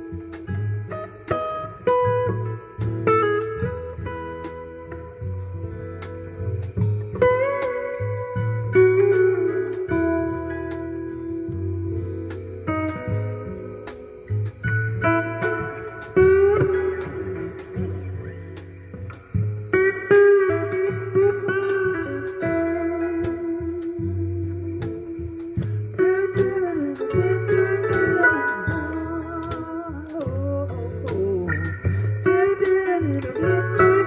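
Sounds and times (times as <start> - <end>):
acoustic guitar plucking: 0.0 - 34.0
bass line: 0.0 - 34.0
light percussion: 0.0 - 34.0.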